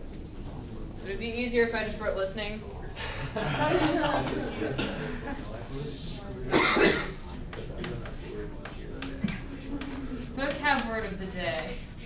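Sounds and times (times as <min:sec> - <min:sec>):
person coughing: 0:04.6 - 0:05.2, 0:06.5 - 0:07.2
chalk strokes on blackboard: 0:07.5 - 0:11.8.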